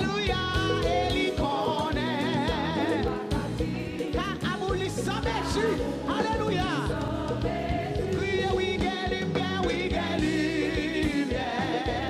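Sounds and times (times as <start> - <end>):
musical accompaniment: 0.0 - 12.0
woman singing gospel song: 0.0 - 12.0.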